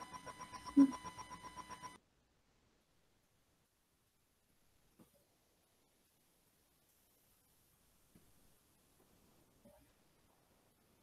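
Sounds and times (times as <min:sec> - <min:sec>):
faint rapid beeping: 0:00.0 - 0:02.0.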